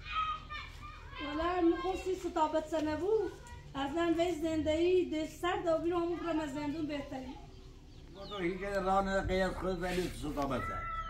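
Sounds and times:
child speaking: 0:00.1 - 0:04.0.

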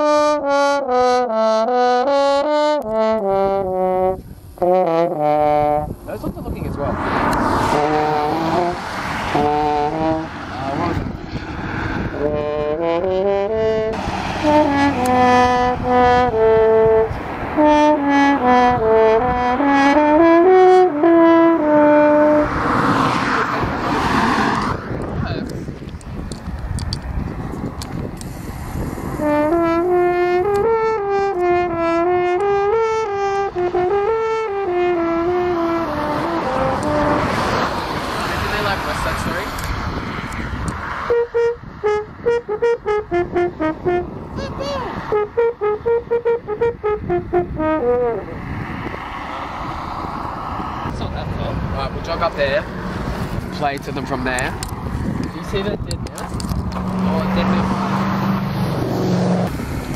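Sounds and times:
french horn melody: 0:00.0 - 0:06.0, 0:07.0 - 0:11.0, 0:12.2 - 0:23.3, 0:29.2 - 0:38.0, 0:41.0 - 0:44.4, 0:45.0 - 0:48.4
rush of noise: 0:05.8 - 0:12.7, 0:22.3 - 0:29.5.

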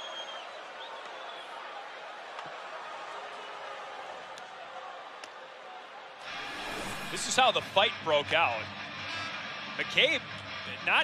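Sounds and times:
broadcast whoosh transition: 0:06.3 - 0:07.4.

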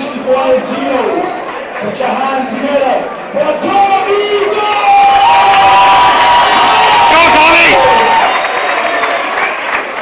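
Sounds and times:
crowd cheering and yelling: 0:00.0 - 0:10.0.

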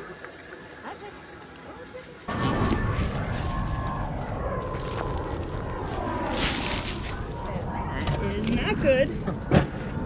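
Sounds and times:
low rumbling noise: 0:02.3 - 0:10.0.

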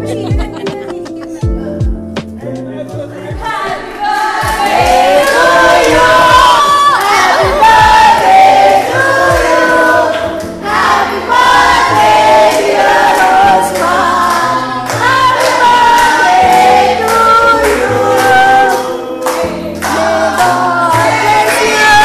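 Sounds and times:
group of voices singing: 0:03.3 - 0:22.0
steady beat of sharp strokes: 0:03.3 - 0:22.0
bass line: 0:04.4 - 0:18.7.

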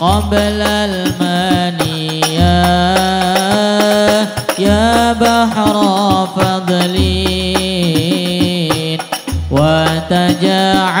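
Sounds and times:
hand drum strokes: 0:00.0 - 0:11.0
man singing ornamented line: 0:00.0 - 0:11.0
bass drum boom: 0:09.3 - 0:10.2.

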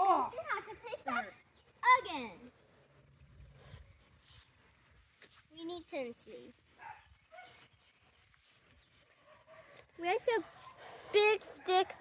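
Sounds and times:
faint dog bark: 0:06.8 - 0:07.7, 0:09.1 - 0:12.0.

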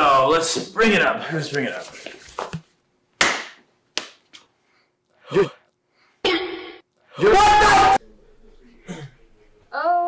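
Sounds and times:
hands slapping together: 0:03.2 - 0:04.5.

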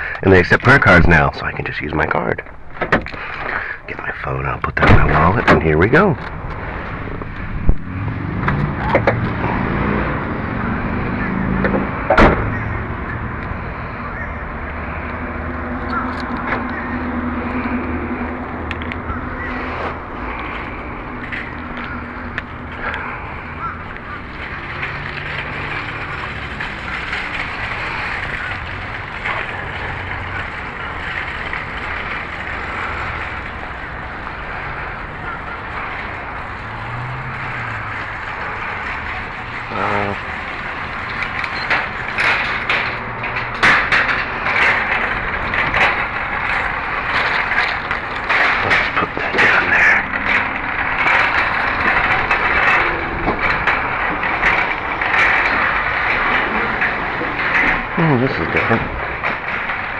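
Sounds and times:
shopping cart wheels rattling: 0:00.0 - 0:02.7, 0:04.0 - 0:59.9.

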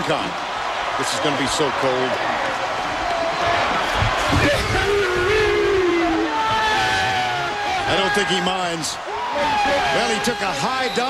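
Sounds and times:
stadium crowd cheering: 0:00.0 - 0:11.0
long falling shout: 0:02.8 - 0:10.8.

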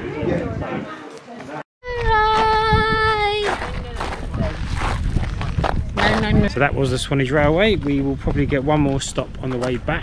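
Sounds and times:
wind rumbling on microphone: 0:00.0 - 0:01.1, 0:01.8 - 0:10.0.

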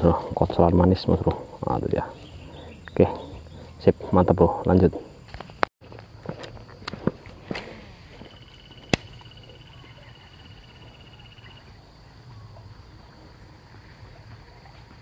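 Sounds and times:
insect droning: 0:00.0 - 0:15.0
crackling snaps: 0:08.8 - 0:09.3.

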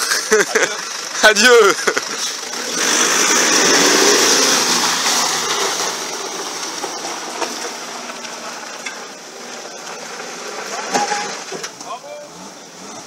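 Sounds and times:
car engine driving away: 0:00.0 - 0:13.0.

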